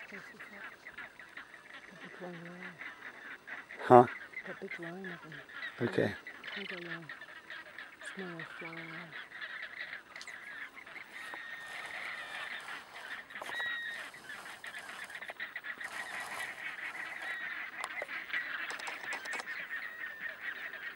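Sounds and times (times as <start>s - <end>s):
flamingos honking: 0.0s - 20.9s.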